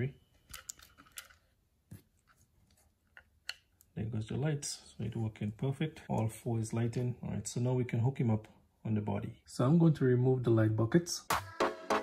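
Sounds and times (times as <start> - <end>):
wires rustling: 0.4 - 3.9.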